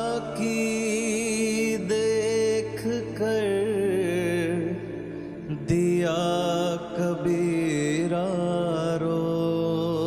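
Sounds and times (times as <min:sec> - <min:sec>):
held melody sung with vibrato: 0:00.0 - 0:10.0.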